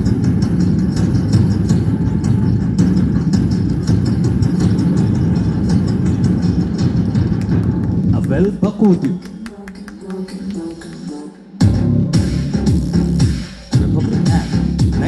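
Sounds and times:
low rumble: 0.0 - 9.4.

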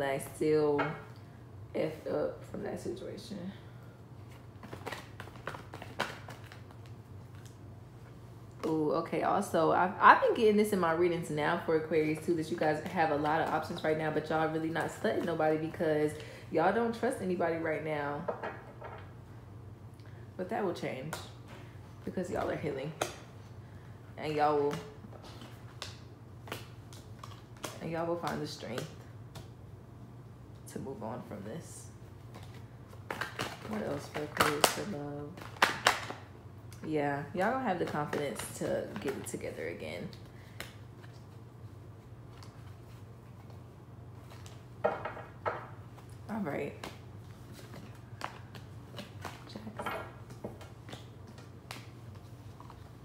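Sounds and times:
low steady hum: 0.0 - 53.0
cards being shuffled: 4.2 - 7.6, 32.2 - 36.2, 45.9 - 53.0.

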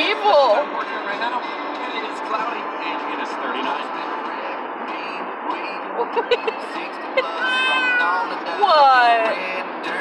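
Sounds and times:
car road and engine noise: 0.0 - 10.0
faint radio playing: 0.0 - 10.0.

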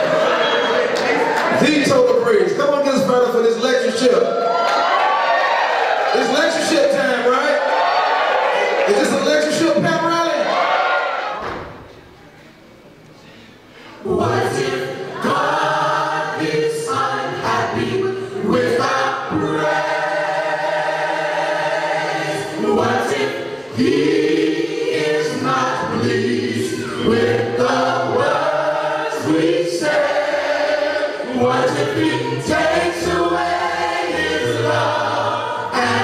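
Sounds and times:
choir singing a cappella: 0.0 - 1.4, 13.8 - 36.0.

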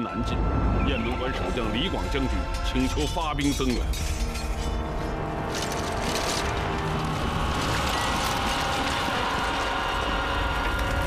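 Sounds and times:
low rumble: 0.0 - 11.0
battle clatter and crackle: 1.0 - 11.0.

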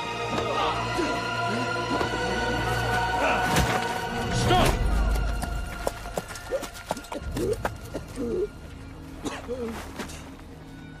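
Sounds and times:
horse hooves clip-clopping: 5.2 - 8.2.

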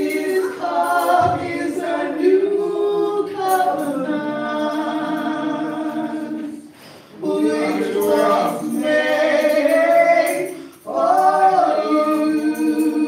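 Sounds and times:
women singing a hymn: 0.0 - 13.0.

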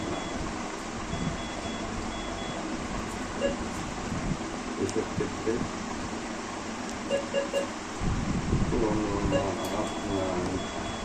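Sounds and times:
steady room hum: 0.0 - 11.0
short high electronic beeps: 3.4 - 3.6, 7.1 - 7.8.

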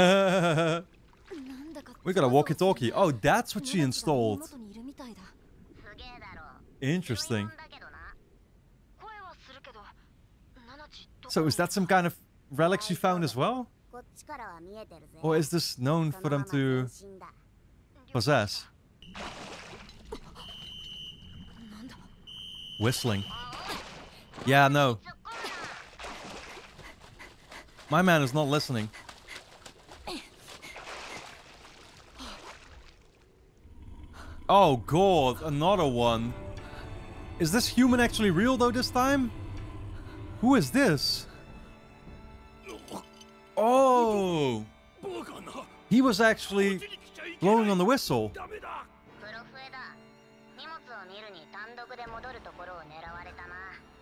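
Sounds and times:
person speaking: 1.6 - 4.6, 15.0 - 17.0, 27.8 - 29.0, 34.4 - 36.4, 37.4 - 39.3, 40.4 - 41.3, 43.6 - 48.8
low steady hum: 18.8 - 42.6.

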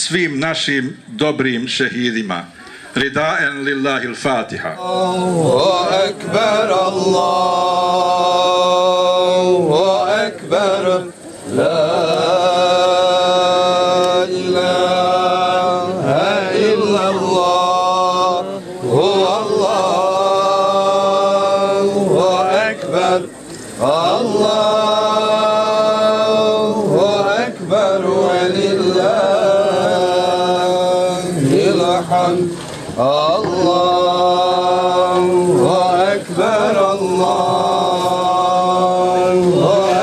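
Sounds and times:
man chanting recitation: 0.0 - 40.0.

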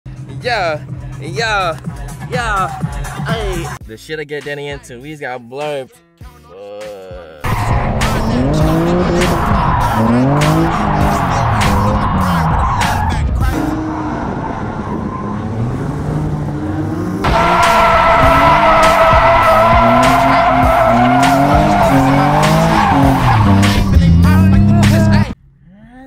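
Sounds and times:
tires squealing: 7.4 - 25.3
car engine revving: 7.4 - 25.4.

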